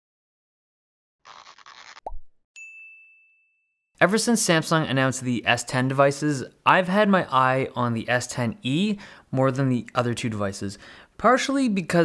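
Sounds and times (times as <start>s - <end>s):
bright ding: 2.6s - 3.8s.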